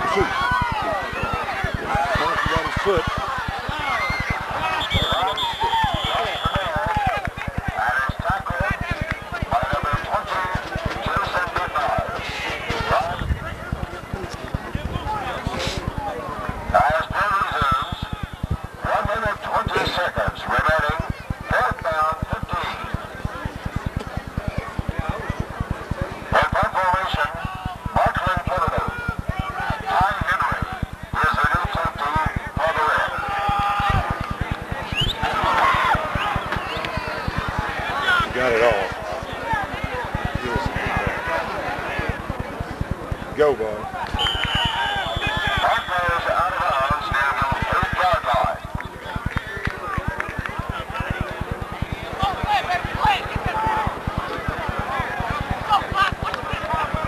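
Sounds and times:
people shouting: 0.0s - 8.0s, 32.7s - 38.4s, 44.0s - 46.2s
rapid low pulsing: 0.0s - 57.0s
voices talking over one another: 0.0s - 57.0s.

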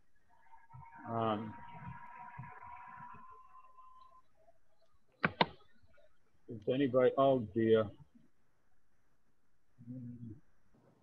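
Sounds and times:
faint steady tone: 0.0s - 11.0s
sharp clicks: 5.1s - 5.7s.

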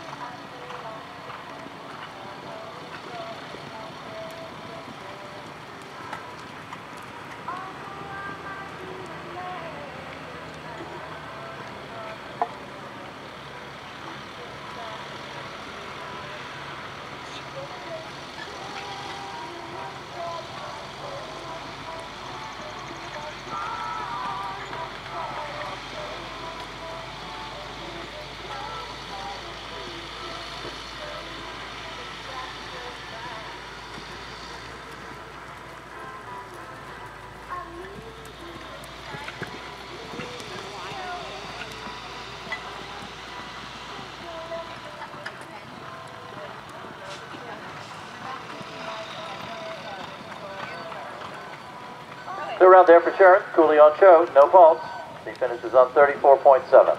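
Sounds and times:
faint distant voices: 0.0s - 56.9s
outdoor background hum: 0.0s - 56.9s.

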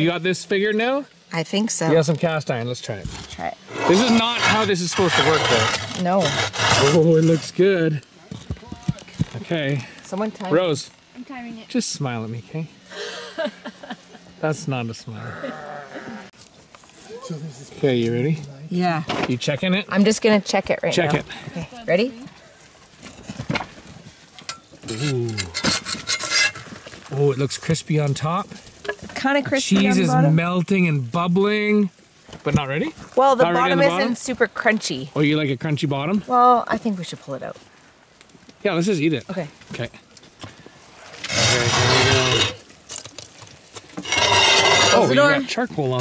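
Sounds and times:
wooden door scraping on earth: 2.9s - 7.7s, 41.0s - 43.1s, 43.8s - 45.4s.

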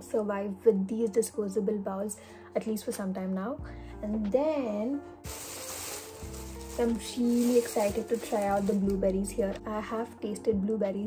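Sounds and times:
plastic bag crinkling: 5.2s - 9.6s.

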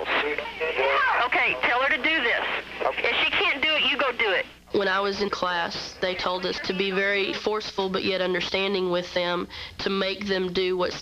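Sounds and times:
speech over telephone line: 0.0s - 7.7s.

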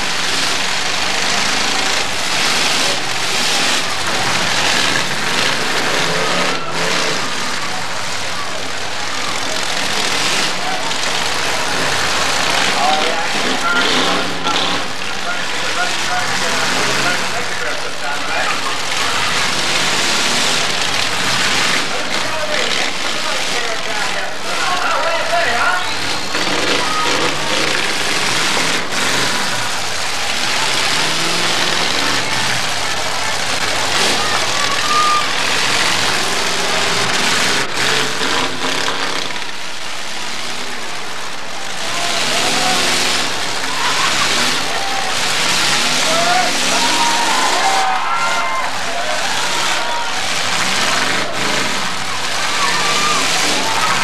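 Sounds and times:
car engines revving: 0.0s - 54.0s
crowd voices: 0.0s - 54.0s.

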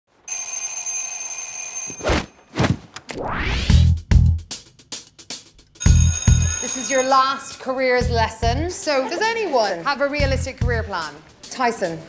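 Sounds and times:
alarm clock bell ringing: 0.3s - 2.0s, 5.8s - 8.0s.

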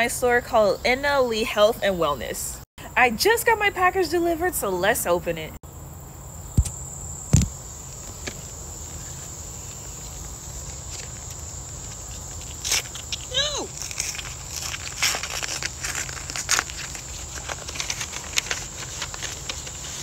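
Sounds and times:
high insect drone: 5.6s - 20.0s
paper envelope tearing: 12.5s - 20.0s.

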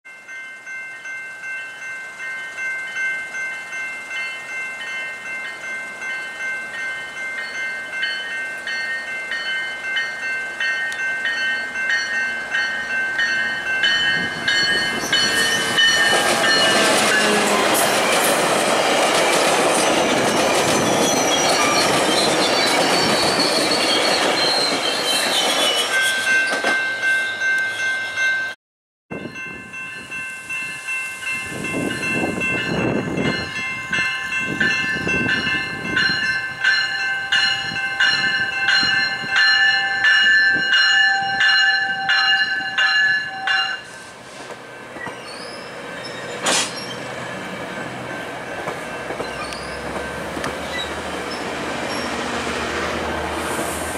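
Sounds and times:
crossing signal ringing: 0.1s - 53.4s
train coaches clattering: 0.2s - 28.5s, 29.2s - 53.9s
diesel locomotive rumbling past: 6.0s - 27.1s, 29.2s - 53.9s.

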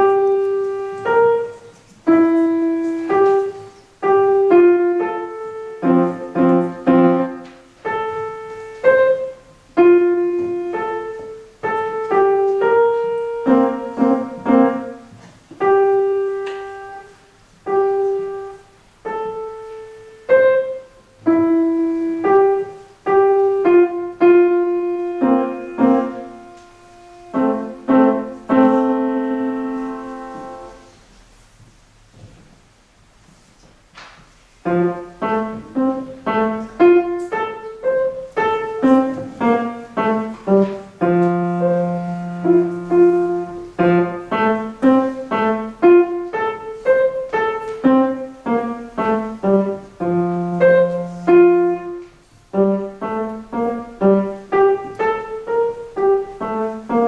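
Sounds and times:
solo grand piano melody: 0.0s - 57.0s.

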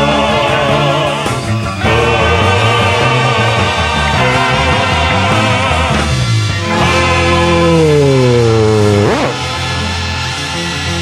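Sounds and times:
live rock band with brass: 1.3s - 10.8s.

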